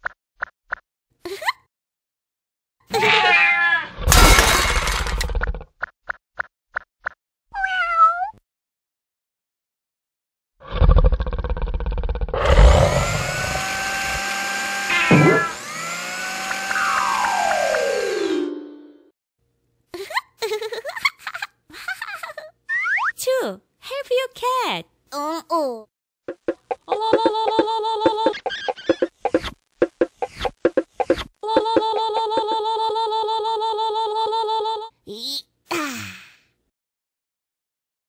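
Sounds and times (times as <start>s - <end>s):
cartoon cat meow: 2.9s - 4.0s, 7.5s - 8.4s.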